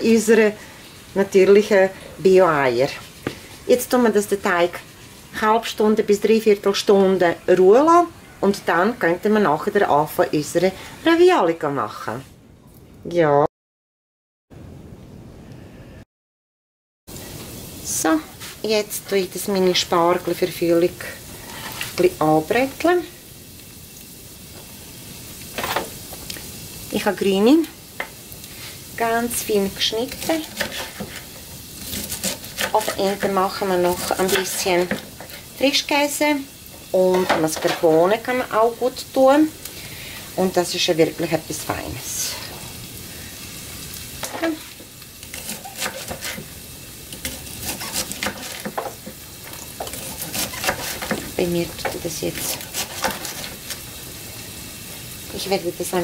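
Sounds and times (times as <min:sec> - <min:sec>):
faint hiss: 0:17.1 - 0:56.0
knife on wooden cutting board: 0:30.1 - 0:35.2, 0:45.3 - 0:46.5, 0:47.2 - 0:49.0, 0:49.8 - 0:53.6
knife chopping on wooden board: 0:49.8 - 0:53.5.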